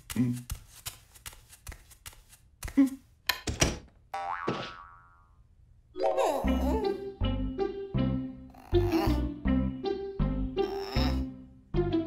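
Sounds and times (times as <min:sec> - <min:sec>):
cartoon boing: 0:04.2 - 0:05.4.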